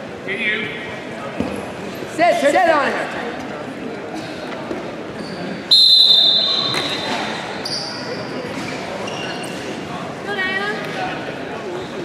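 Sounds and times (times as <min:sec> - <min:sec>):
voices of coaches and spectators: 0:00.0 - 0:12.0
referee's whistle blasts: 0:05.7 - 0:07.9.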